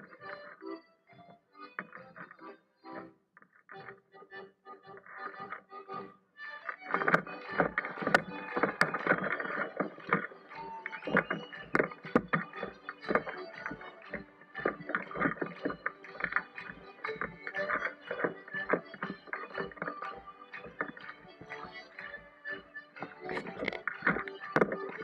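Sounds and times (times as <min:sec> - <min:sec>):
held melodic notes: 0:05.0 - 0:25.0.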